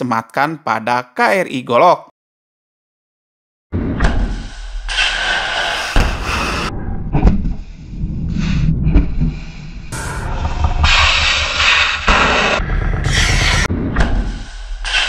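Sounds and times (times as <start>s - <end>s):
rocket motor roar: 9.9s - 13.7s.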